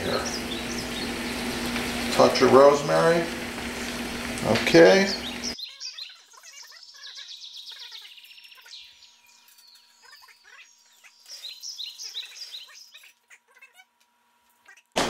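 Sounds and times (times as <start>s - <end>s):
sauce simmering and sputtering in pan: 0.0s - 5.6s
high chirping squeaks: 5.4s - 13.9s.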